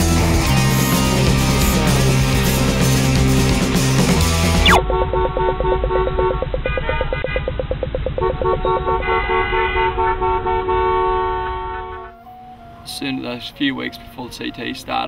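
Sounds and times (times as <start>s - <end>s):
rock music: 0.0s - 4.8s
fast even pulse: 4.6s - 4.8s
held horn-like tones: 8.2s - 12.4s.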